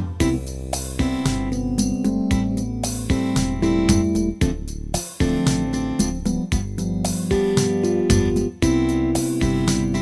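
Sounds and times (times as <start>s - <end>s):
programmed drum beat: 0.0s - 10.0s
electronic keyboard organ melody: 1.0s - 10.0s.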